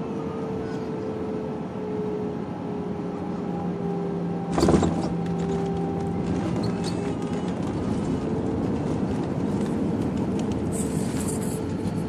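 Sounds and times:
airplane engine hum: 0:00.0 - 0:12.0.

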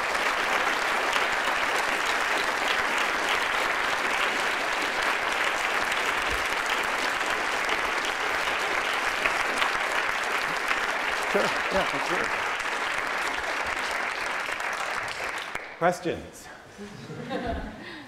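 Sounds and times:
audience applauding: 0:00.0 - 0:15.9.

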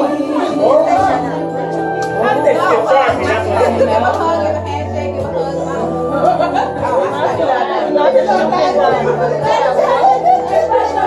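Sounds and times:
overlapping chattering voices: 0:00.0 - 0:11.0.

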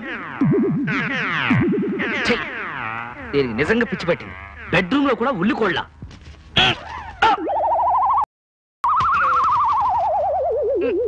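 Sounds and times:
warbling electronic tone: 0:00.0 - 0:05.8, 0:07.2 - 0:11.0.

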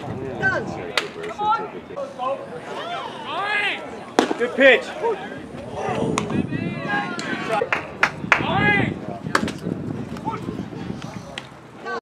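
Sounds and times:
voices calling out: 0:00.0 - 0:09.4
baseball hitting leather glove: 0:04.2 - 0:04.4.

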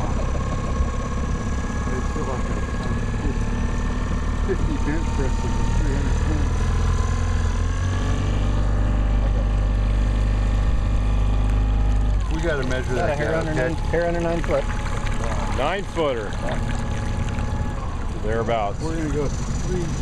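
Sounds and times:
boat motor idling: 0:00.0 - 0:20.0.

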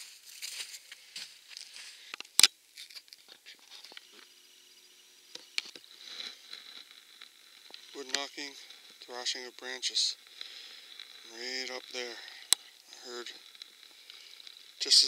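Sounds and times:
camera handling rustle: 0:01.6 - 0:04.3.

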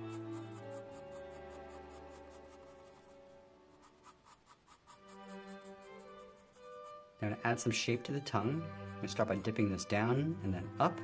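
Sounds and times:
pencil scratching on paper: 0:00.0 - 0:07.2
soft background music: 0:00.0 - 0:11.0.

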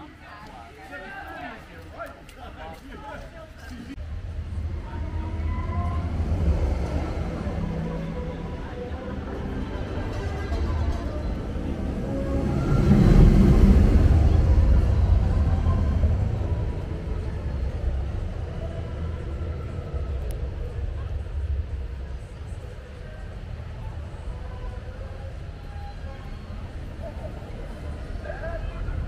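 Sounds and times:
roller coaster train rumbling: 0:03.9 - 0:29.0.

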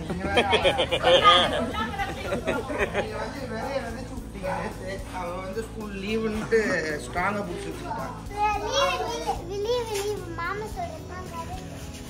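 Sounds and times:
children playing: 0:00.0 - 0:12.0
child talking and calling out: 0:08.0 - 0:11.9.

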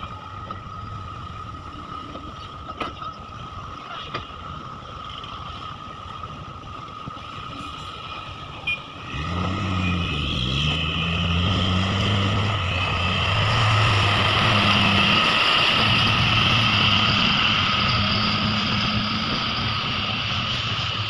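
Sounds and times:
truck diesel engine revving: 0:09.0 - 0:21.0.

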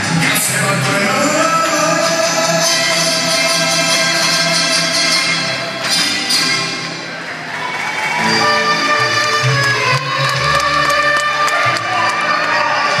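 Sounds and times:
live folk music through speakers: 0:00.0 - 0:13.0
crowd cheering and applauding: 0:01.3 - 0:13.0.

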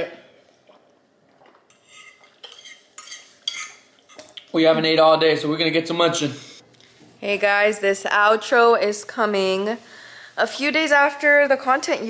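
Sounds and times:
fork scraping ceramic plate: 0:01.7 - 0:03.9.

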